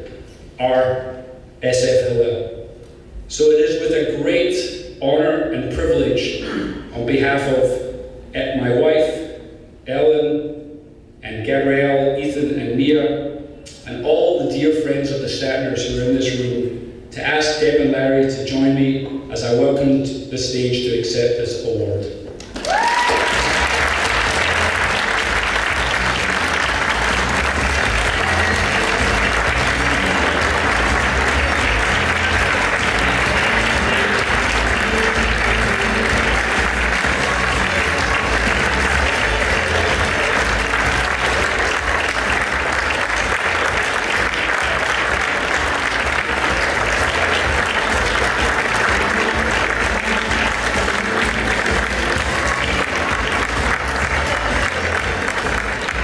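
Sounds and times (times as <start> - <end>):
audience applauding: 22.4 - 56.0.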